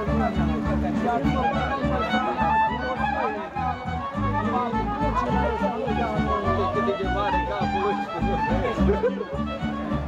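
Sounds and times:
faint crowd voices: 0.0 - 10.0
folk fiddle melody: 0.0 - 10.0.

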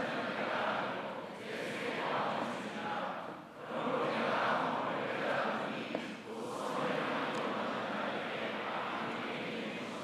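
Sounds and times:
congregation reading aloud in unison: 0.0 - 10.0.

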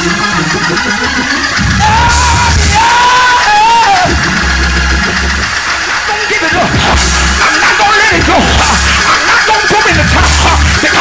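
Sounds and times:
praise music with bass and drums: 0.0 - 11.0
high voice yelling wavering notes: 1.6 - 5.0.

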